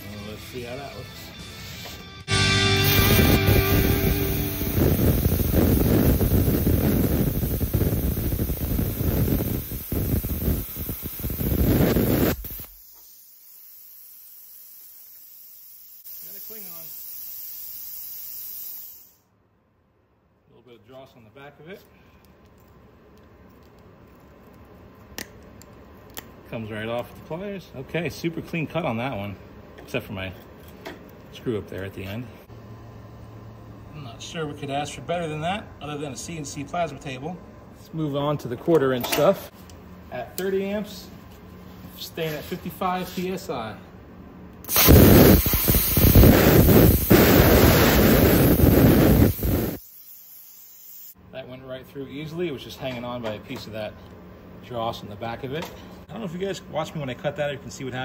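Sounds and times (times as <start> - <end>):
low shop hum: 0.0 - 58.0
plasma cutter hissing and crackling: 2.8 - 19.2, 44.7 - 51.2.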